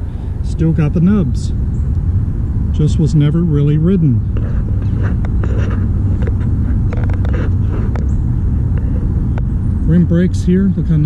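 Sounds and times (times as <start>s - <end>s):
highway traffic rumble: 0.0s - 11.0s.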